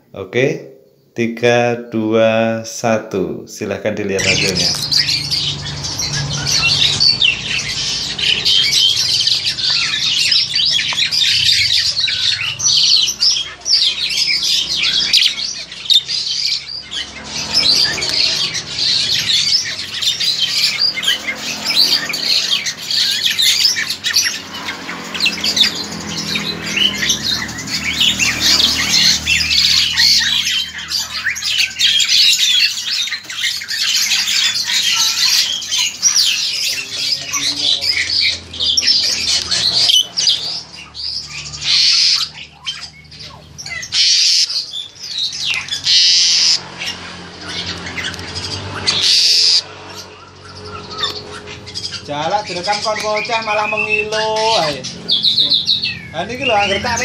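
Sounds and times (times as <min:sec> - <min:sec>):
starlings squawking: 0:00.0 - 0:57.0.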